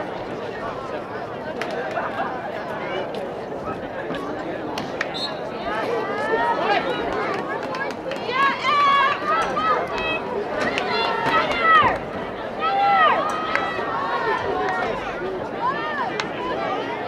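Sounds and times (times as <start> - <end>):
high voices shouting: 8.1 - 17.0.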